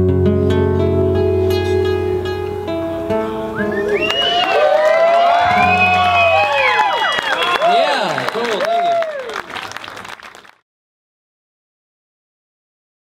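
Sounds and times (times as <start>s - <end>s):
classical guitar ringing notes: 0.0s - 3.9s
rising and falling whoops: 3.6s - 9.5s.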